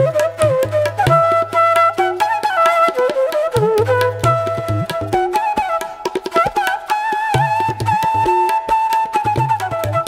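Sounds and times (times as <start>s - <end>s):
bamboo flute melody: 0.0s - 10.0s
tabla drumming: 0.0s - 10.0s.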